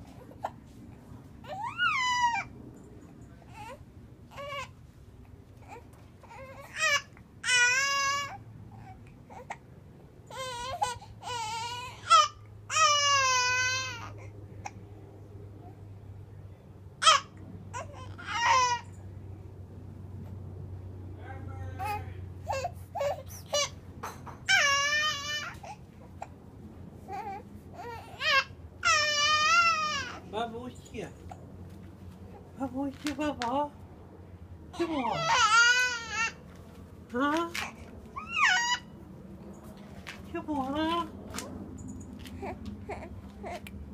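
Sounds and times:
faint low hum: 0.0s - 43.9s
infant crying: 1.4s - 2.5s, 3.5s - 4.8s, 5.6s - 9.6s, 10.3s - 14.8s, 17.0s - 18.9s, 21.8s - 23.8s, 24.4s - 26.3s, 27.1s - 30.3s, 34.8s - 36.4s, 37.6s - 39.0s, 42.3s - 43.7s.

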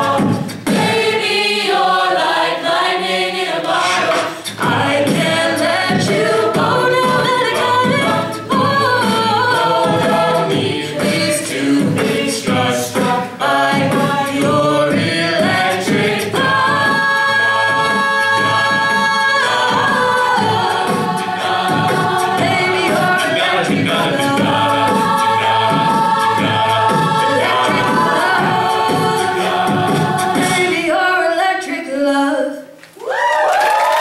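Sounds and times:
beatboxing: 0.0s - 1.2s, 3.7s - 30.9s
backing vocal chords: 0.0s - 32.3s
woman singing lead: 3.6s - 33.5s.

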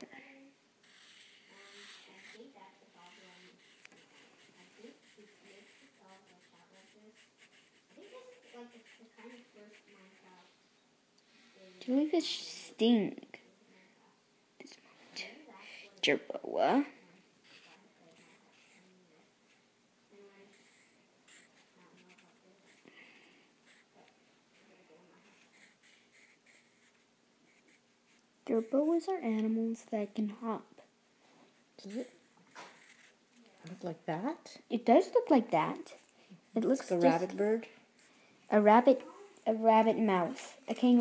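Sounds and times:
pencil scratching on paper: 0.8s - 10.4s, 17.4s - 19.6s, 20.4s - 29.4s, 31.8s - 34.0s.

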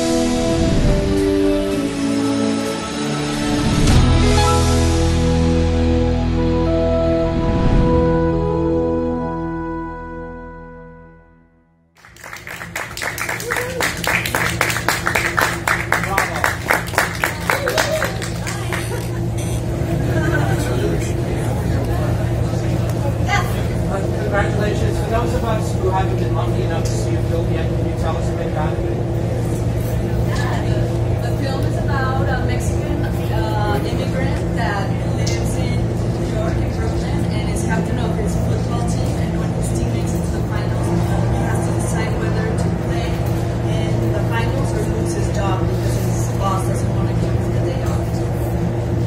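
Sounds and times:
steady low hum: 12.0s - 49.0s
crowd murmuring: 12.4s - 49.0s.

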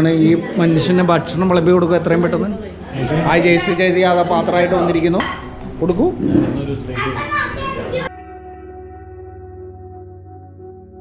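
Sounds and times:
room chatter with children: 0.0s - 8.4s.

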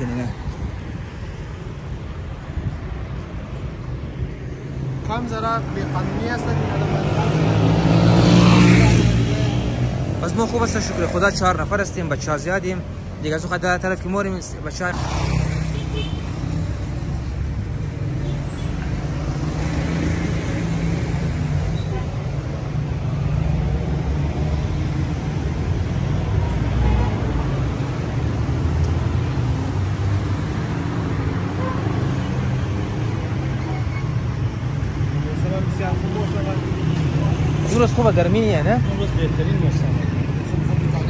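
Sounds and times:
street traffic din: 0.0s - 41.0s.

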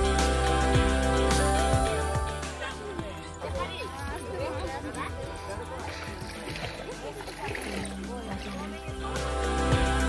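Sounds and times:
background music: 0.0s - 10.0s
people chattering: 0.0s - 10.0s.

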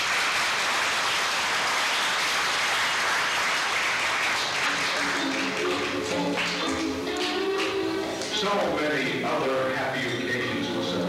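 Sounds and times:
audience applauding: 0.0s - 8.7s
music: 4.1s - 11.0s.

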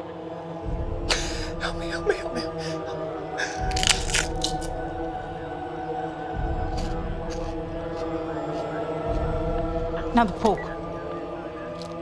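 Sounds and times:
background music: 0.0s - 12.0s
food being bitten and chewed: 3.5s - 4.8s, 6.7s - 8.1s, 11.8s - 12.0s.

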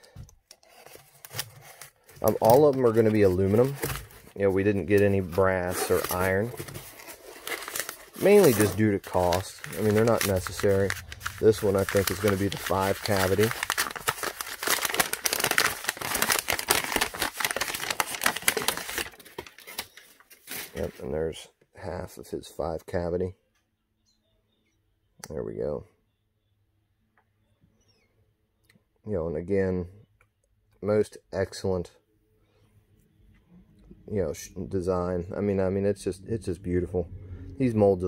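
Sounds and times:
paper crinkling and crackling: 0.0s - 21.2s.

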